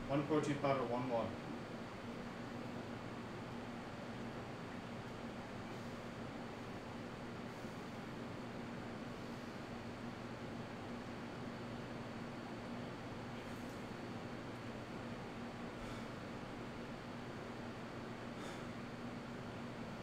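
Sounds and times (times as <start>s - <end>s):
room fans running: 0.0s - 20.0s.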